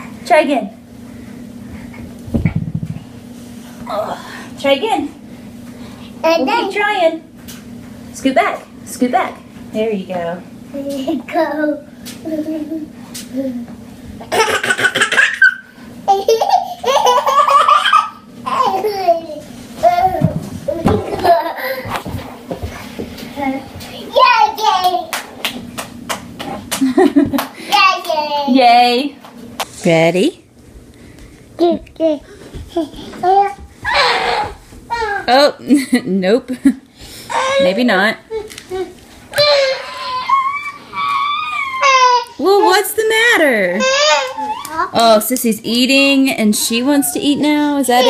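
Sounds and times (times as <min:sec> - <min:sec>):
faint hum: 0:00.0 - 0:48.0
toddler clapping hands: 0:24.6 - 0:28.2.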